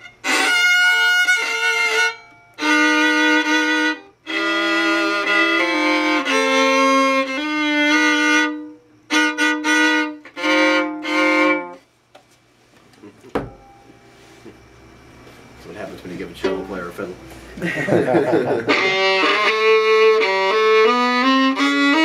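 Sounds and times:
violin bowed notes: 0.0s - 11.9s, 18.5s - 22.0s.

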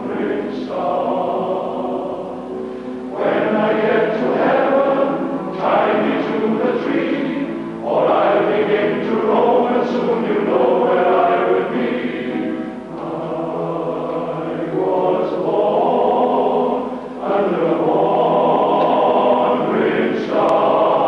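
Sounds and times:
male voice choir singing: 0.0s - 2.5s, 3.1s - 21.0s.

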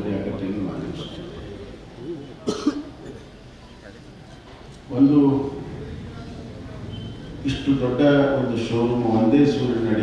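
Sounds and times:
man coughing: 2.4s - 3.3s.

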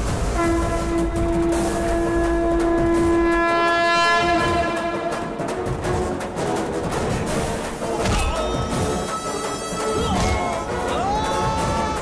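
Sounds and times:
noisy soundtrack backing: 0.0s - 12.0s.

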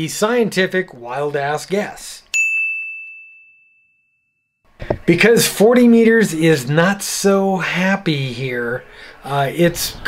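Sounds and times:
high bell-like ding: 2.3s - 4.5s.

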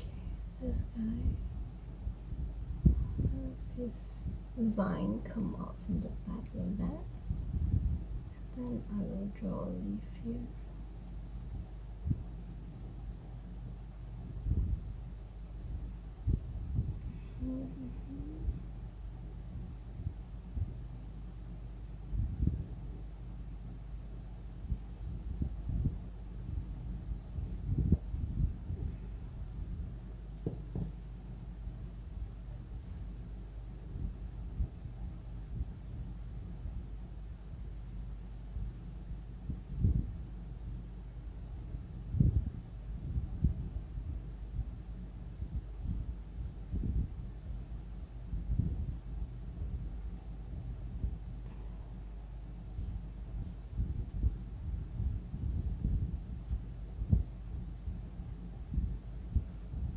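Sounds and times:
dull low thumps: 0.0s - 8.8s, 10.6s - 20.9s, 24.6s - 36.9s, 39.4s - 40.3s, 41.6s - 59.9s
low background hum: 0.0s - 59.9s
pencil knocking on table: 30.4s - 31.0s.

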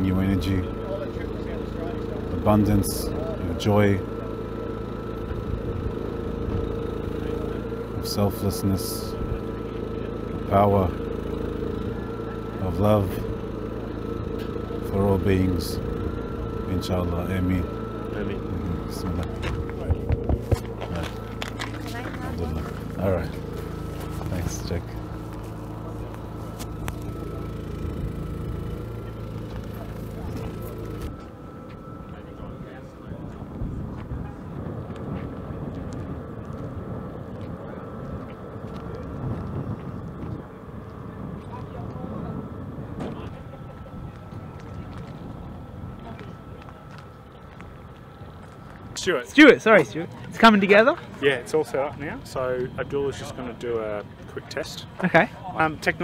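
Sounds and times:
man speaking: 0.0s - 4.2s, 7.1s - 11.1s, 12.5s - 13.4s, 14.8s - 20.2s, 22.2s - 25.2s
low outdoor rumble: 0.0s - 56.0s
steady motor hum: 0.0s - 56.0s
thin steady whine: 0.0s - 56.0s
faint steady high tone: 7.0s - 34.6s.

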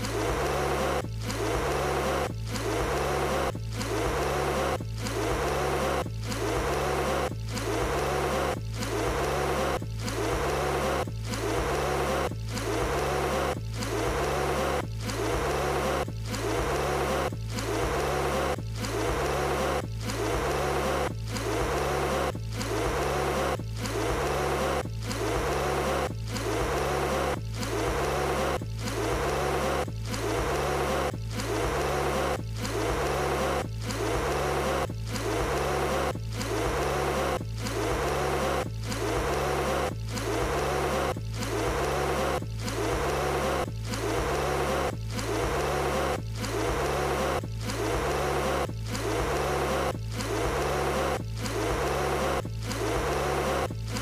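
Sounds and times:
background music with bass line: 0.0s - 54.0s.

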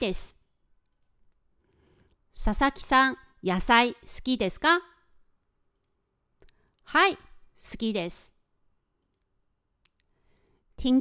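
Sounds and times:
person speaking: 6.8s - 8.4s.

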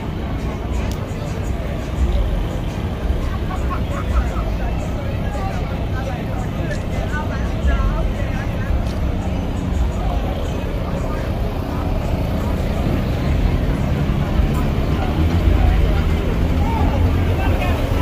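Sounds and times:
loud steady low rumble: 0.0s - 18.0s
people talking at once: 0.0s - 18.0s.

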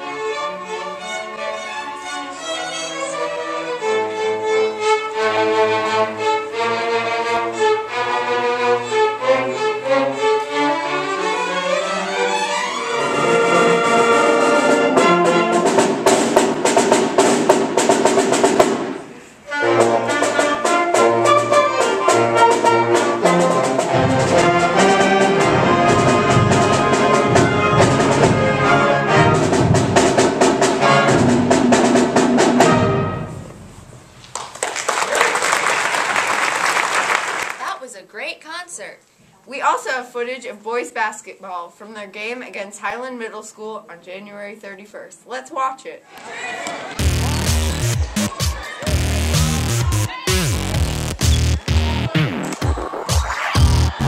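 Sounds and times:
string orchestra playing: 0.0s - 33.7s, 46.6s - 54.0s
concert band playing: 12.1s - 33.9s, 46.9s - 54.0s
low percussion: 13.0s - 34.0s, 47.0s - 54.0s.

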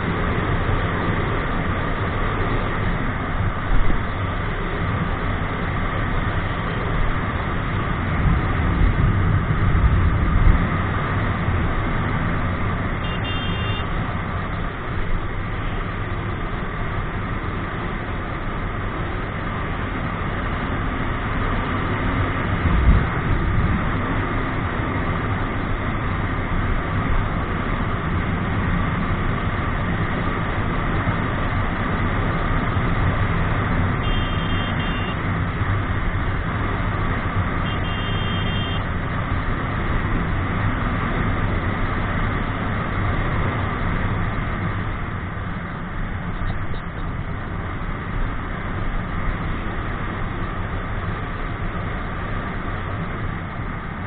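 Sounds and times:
motorcycle engine drone: 0.0s - 54.0s
wind noise: 7.9s - 12.9s, 22.5s - 24.0s
short high beeps: 34.1s - 35.2s.

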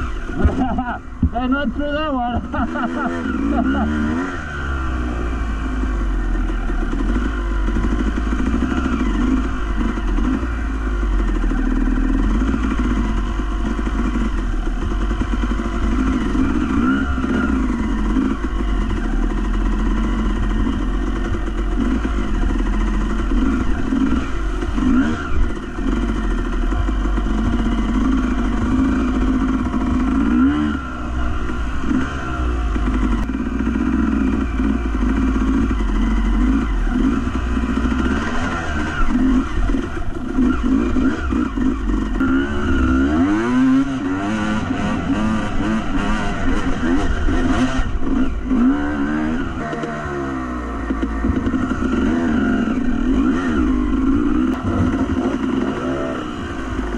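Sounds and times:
off-road motorbike engine revving: 0.0s - 56.9s.

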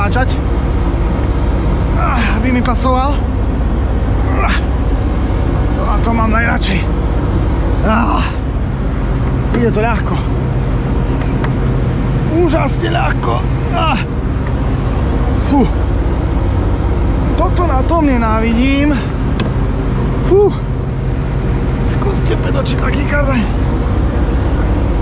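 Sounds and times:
low engine rumble: 0.0s - 25.0s.

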